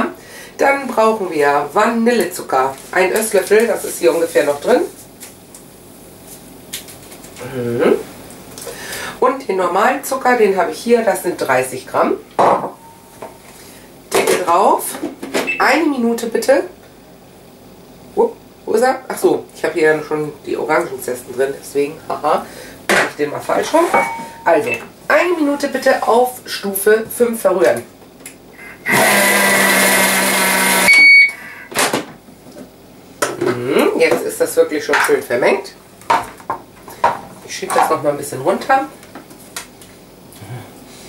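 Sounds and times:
kitchen blender motor running: 28.6 - 31.1
short electronic beep: 30.9 - 31.7.

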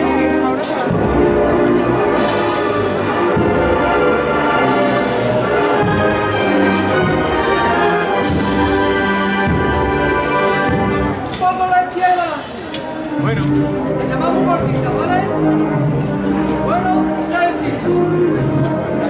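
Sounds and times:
brass band playing a march: 0.0 - 19.0.

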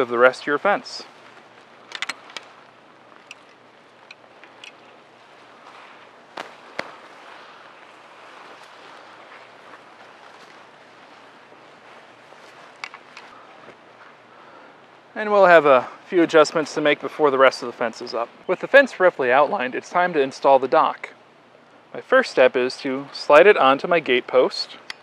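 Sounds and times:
outdoor hiss: 0.0 - 25.0.

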